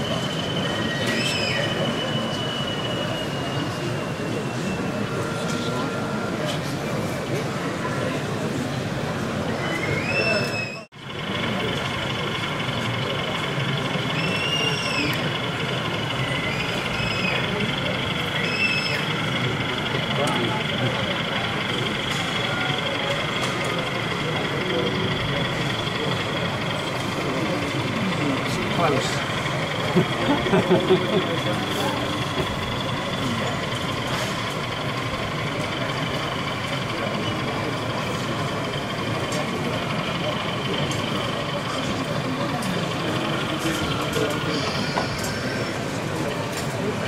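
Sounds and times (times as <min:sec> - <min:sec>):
crowd chatter: 0:00.0 - 0:47.0.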